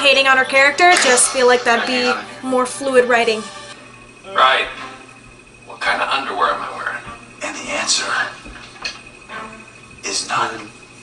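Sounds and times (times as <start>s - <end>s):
soft background music: 0.0s - 10.8s
person speaking on television: 0.8s - 3.4s.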